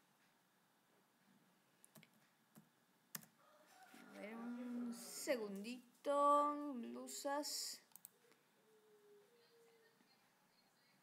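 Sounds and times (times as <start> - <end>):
computer mouse clicks: 7.9 - 8.2.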